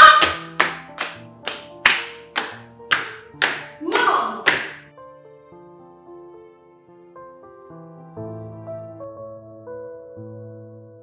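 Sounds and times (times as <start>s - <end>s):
hands clapping: 0.0s - 4.9s
soft background music: 0.0s - 11.0s.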